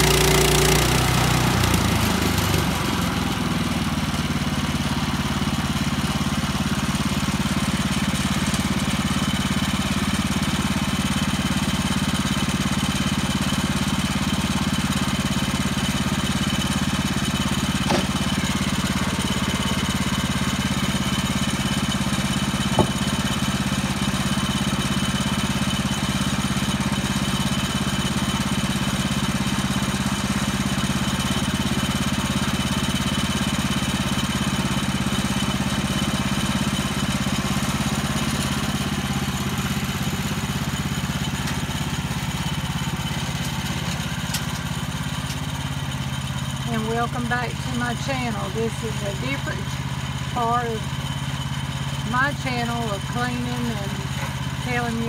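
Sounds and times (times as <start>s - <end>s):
small gas engine idling: 0.0s - 55.0s
knocks from timber being handled: 22.7s - 23.0s.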